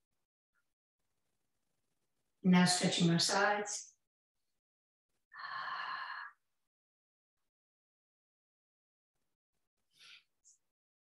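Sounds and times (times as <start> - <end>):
person sighing breath: 5.4 - 6.4.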